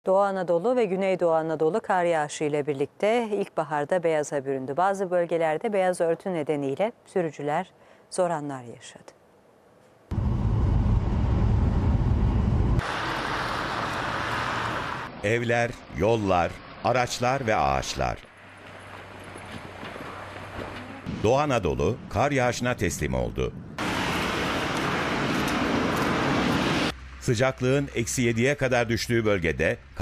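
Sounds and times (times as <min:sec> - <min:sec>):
loud low rumble: 0:10.1 - 0:15.2
traffic on a snowy street: 0:10.1 - 0:21.2, 0:21.8 - 0:30.0.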